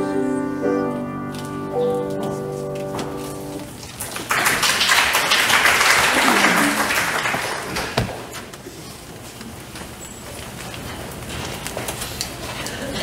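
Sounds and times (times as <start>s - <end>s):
choir and piano chord: 0.0s - 2.1s
audience applause: 3.9s - 8.5s.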